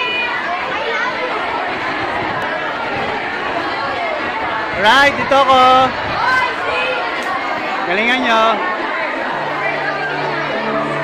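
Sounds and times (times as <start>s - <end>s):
children chattering in a hall: 0.0s - 11.0s.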